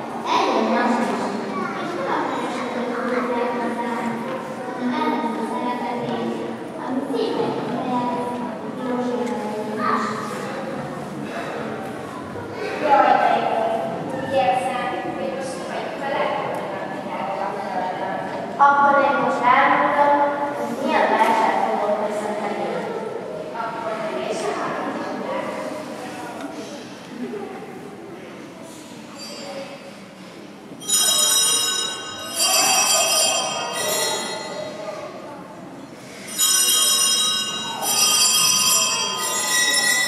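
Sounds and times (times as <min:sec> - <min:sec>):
girl speaking into a microphone: 0:00.0 - 0:11.4, 0:12.1 - 0:26.8
small bell ringing: 0:30.8 - 0:34.8, 0:36.3 - 0:40.0.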